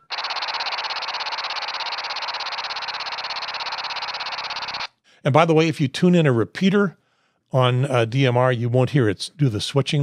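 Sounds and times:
pulsing digital radio buzz: 0:00.0 - 0:04.9.

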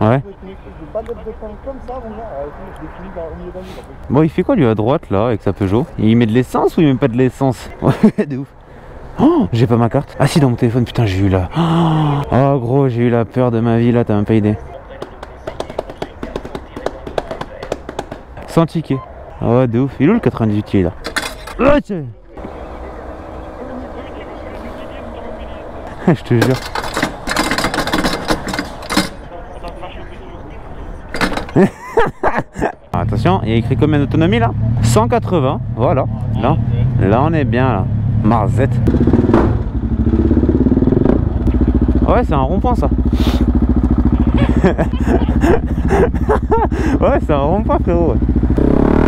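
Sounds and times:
person exclaiming: 0:11.5 - 0:12.3
motorcycle engine running: 0:33.8 - 0:49.0.

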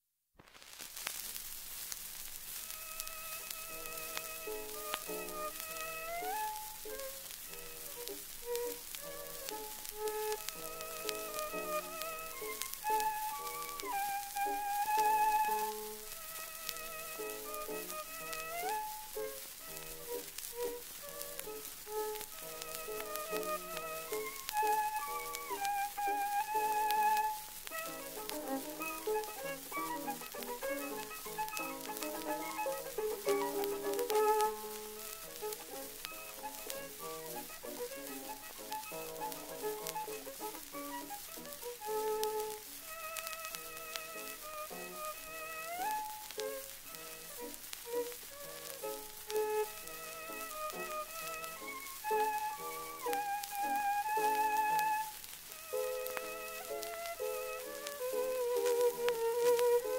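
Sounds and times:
record surface hiss and crackle: 0:00.0 - 0:59.9
piano accompaniment: 0:02.5 - 0:59.9
violin waltz melody: 0:02.6 - 0:59.9.

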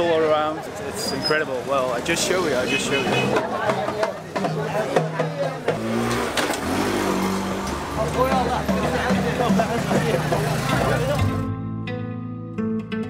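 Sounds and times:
many people talking: 0:00.0 - 0:11.5.

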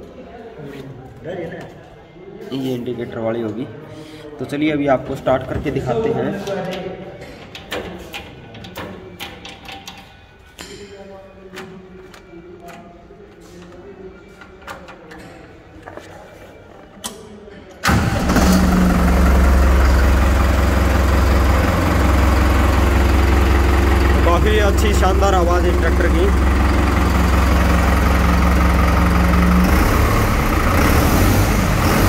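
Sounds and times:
tractor diesel engine running: 0:17.8 - 0:32.0.

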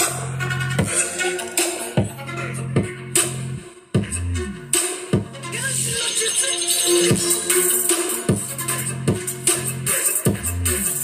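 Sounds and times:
electronic music from speaker: 0:00.0 - 0:11.0
deep bass notes: 0:02.0 - 0:05.6.

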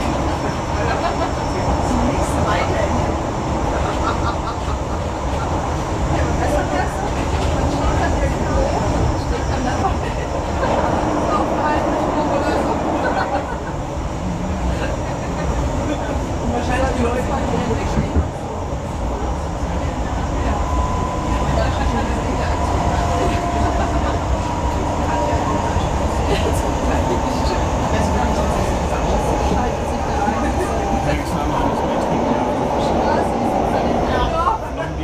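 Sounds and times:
train wheels rumbling on rails: 0:00.0 - 0:35.0.

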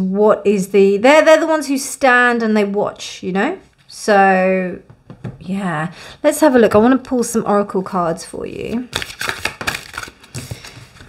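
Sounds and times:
cards clicking and rustling: 0:08.9 - 0:11.0.

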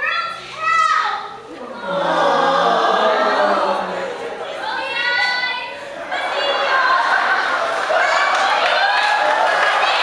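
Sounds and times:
voices singing held note: 0:01.5 - 0:04.5.

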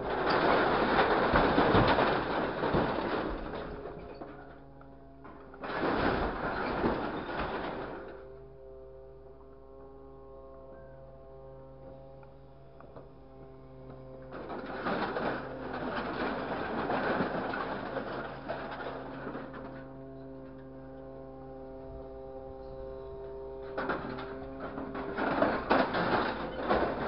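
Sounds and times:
grapple clattering in scrap metal: 0:00.0 - 0:08.3, 0:14.3 - 0:20.7, 0:23.6 - 0:27.0
truck engine and hydraulic crane hum: 0:00.0 - 0:27.0.

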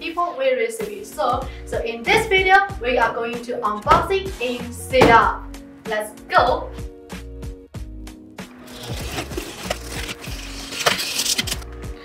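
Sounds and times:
background music with steady beat: 0:00.0 - 0:12.0
knife slitting packing tape: 0:08.6 - 0:11.8.

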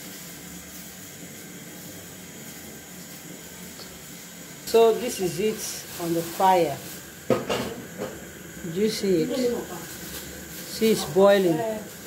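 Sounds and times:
water boiling in pot: 0:00.0 - 0:12.0.

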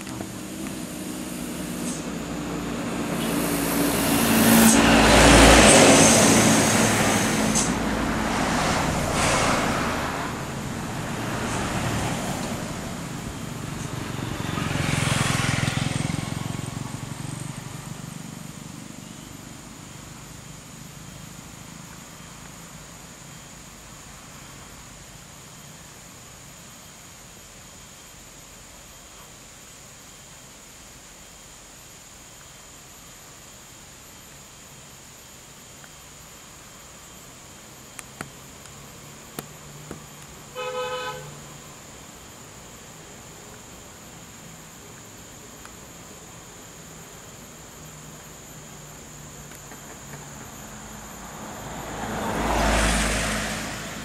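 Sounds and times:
bus diesel engine at low speed: 0:00.0 - 0:26.3, 0:36.6 - 0:54.0
loud hissing bursts: 0:00.2 - 0:13.7.

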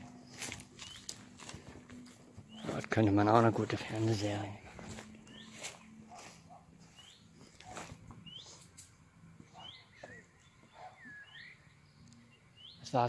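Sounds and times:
bird chirping: 0:00.2 - 0:01.4, 0:02.4 - 0:13.0.

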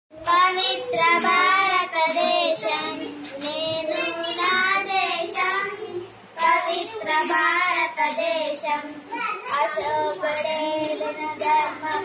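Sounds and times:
girl singing: 0:00.1 - 0:12.0.

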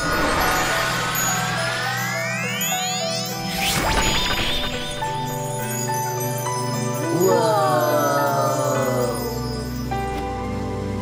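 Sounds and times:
rushing whoosh: 0:00.0 - 0:05.7
low drone: 0:00.0 - 0:06.2
shimmering tone sweeping upward: 0:00.0 - 0:09.8
music: 0:00.0 - 0:11.0.

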